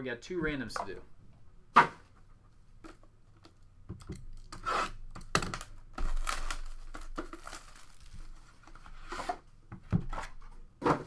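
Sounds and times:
plastic wrap tearing and crinkling: 4.3 - 8.9.

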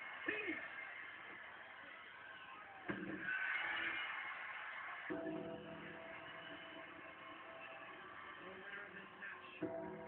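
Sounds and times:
arena crowd cheering: 0.0 - 10.0.

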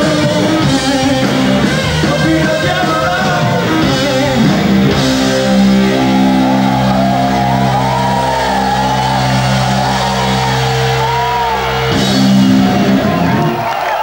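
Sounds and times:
bending guitar notes: 3.2 - 13.6
distorted electric guitar chord: 4.0 - 13.5.

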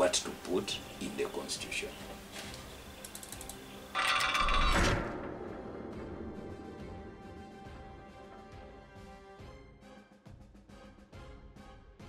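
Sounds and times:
ratcheting clicks: 3.0 - 4.6.

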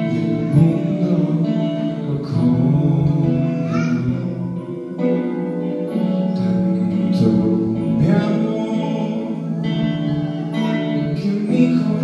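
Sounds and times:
acoustic guitar: 0.0 - 12.0
man singing into microphone: 0.0 - 12.0.

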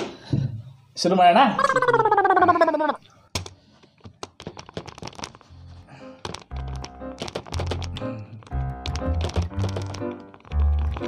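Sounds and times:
typing on computer keyboard: 6.2 - 11.0.

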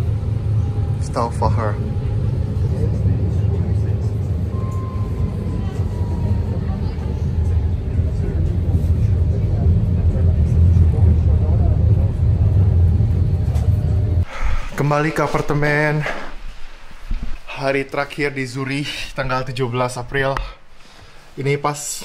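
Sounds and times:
tram rumbling: 0.0 - 21.1.

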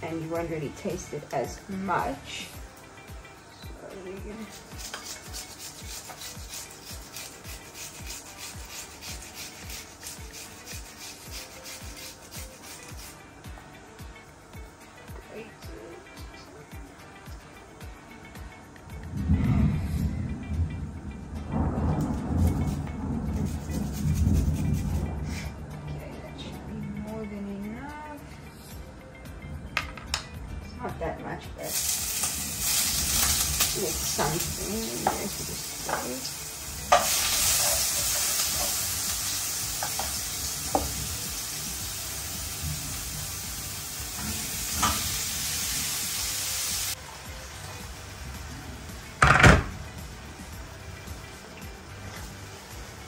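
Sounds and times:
onion rasping on metal grater: 4.4 - 13.2, 22.5 - 25.0, 36.9 - 39.2.

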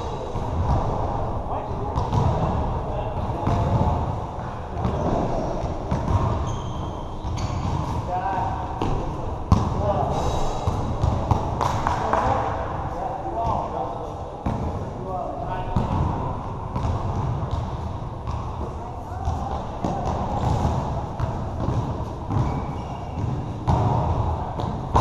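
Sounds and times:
basketball bouncing on court: 2.0 - 9.9, 10.6 - 12.5, 15.6 - 25.0.

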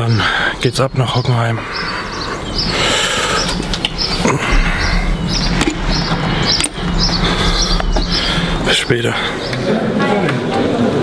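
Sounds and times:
songbirds chirping: 0.0 - 11.0
steady low rumble: 0.3 - 10.0.

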